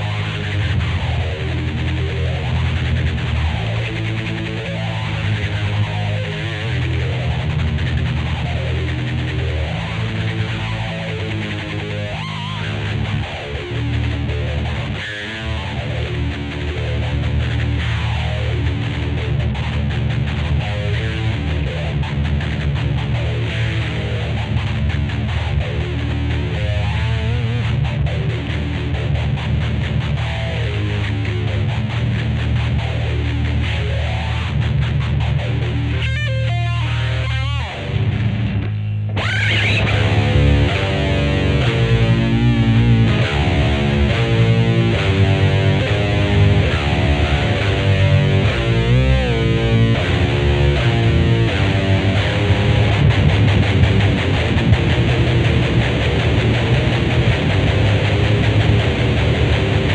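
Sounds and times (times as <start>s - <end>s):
distorted electric guitars: 0.0s - 59.9s.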